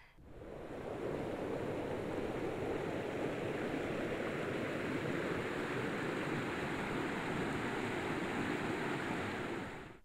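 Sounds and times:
steady rushing noise: 0:00.2 - 0:10.0.

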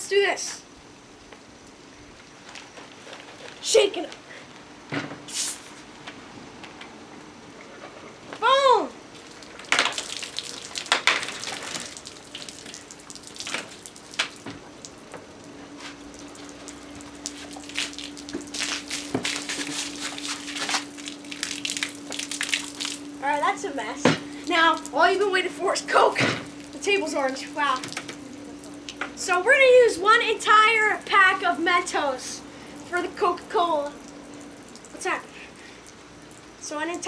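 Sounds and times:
soda spurting and splashing: 0:09.1 - 0:15.0, 0:15.7 - 0:37.0.

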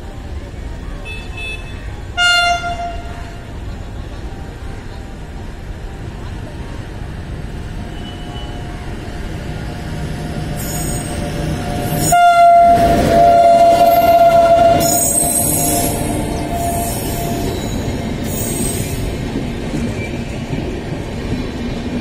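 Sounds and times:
train running past on rails: 0:00.0 - 0:22.0
train horn blast: 0:01.1 - 0:03.4, 0:11.8 - 0:17.8
high-pitched wheel squeals: 0:10.6 - 0:11.2, 0:11.8 - 0:19.0.

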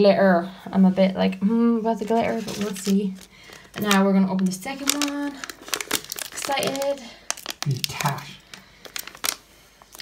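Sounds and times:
foil pouch crinkling: 0:02.0 - 0:10.0.

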